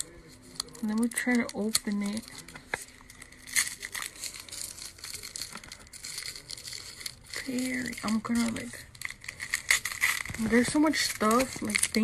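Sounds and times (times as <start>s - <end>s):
gift wrapping crinkling: 0.0s - 12.0s.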